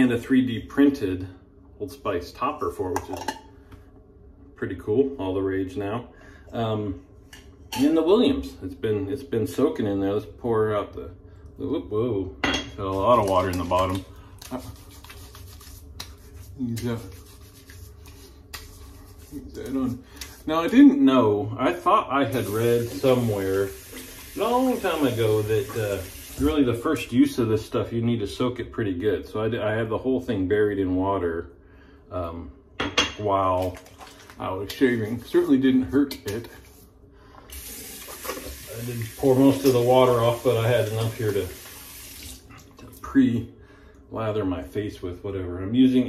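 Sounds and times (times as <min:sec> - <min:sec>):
wet hands rubbing beard: 0:12.9 - 0:20.8, 0:33.8 - 0:42.6
tap running into sink: 0:37.5 - 0:42.4.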